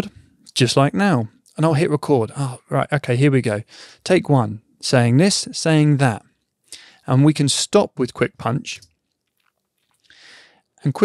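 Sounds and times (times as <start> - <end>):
soft intake of breath: 3.7 - 4.0, 6.7 - 7.1, 10.1 - 10.6.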